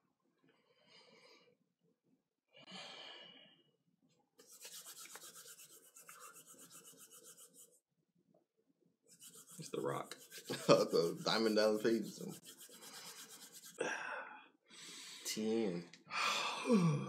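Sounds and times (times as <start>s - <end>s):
hands rubbing together: 4.4s - 7.8s, 9.1s - 13.8s.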